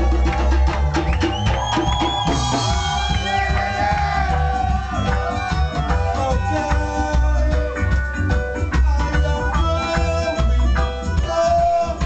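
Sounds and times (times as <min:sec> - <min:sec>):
heavy bass line: 0:00.0 - 0:12.0
live reggae band playing: 0:00.0 - 0:12.0.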